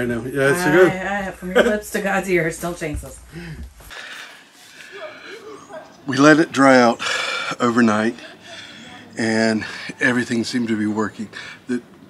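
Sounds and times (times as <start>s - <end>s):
outdoor background hiss: 0.0s - 12.0s
faint indistinct voices: 4.7s - 11.9s.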